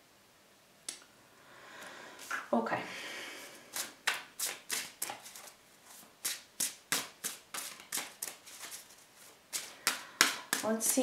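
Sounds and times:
cards being shuffled: 3.7s - 11.0s.

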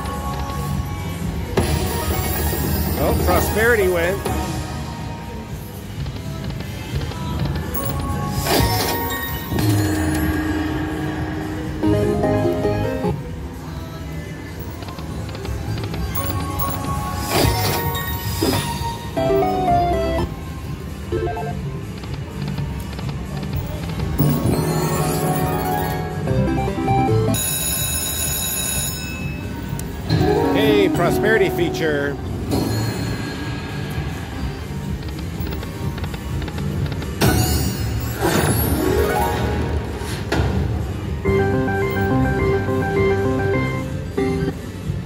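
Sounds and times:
slot machine game music: 0.0s - 5.9s, 7.5s - 22.6s, 23.4s - 45.0s
slot machine win burst: 1.6s - 4.9s, 7.8s - 13.2s, 16.2s - 20.3s, 21.1s - 21.6s, 24.2s - 33.8s, 37.2s - 40.0s, 41.2s - 44.6s
slot machine reels spinning: 7.7s - 13.2s, 14.6s - 20.3s, 23.6s - 29.4s.

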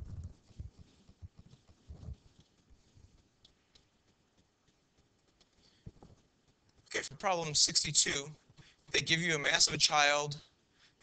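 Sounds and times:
microphone handling thumps: 0.0s - 2.3s.

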